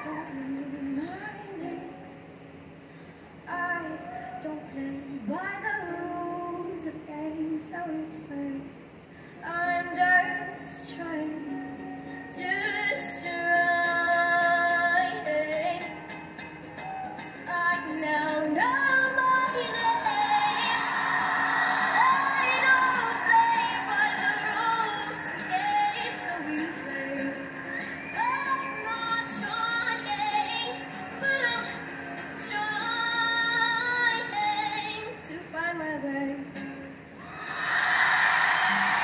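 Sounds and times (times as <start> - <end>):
girl singing: 0.0 - 2.1, 3.5 - 8.7, 9.4 - 15.9, 17.4 - 37.0
ukulele: 9.8 - 39.0.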